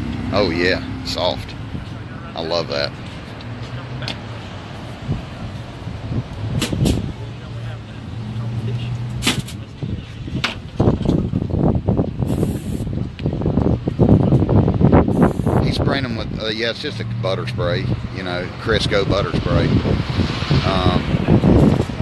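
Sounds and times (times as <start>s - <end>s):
outdoor background noise: 0.0s - 22.0s.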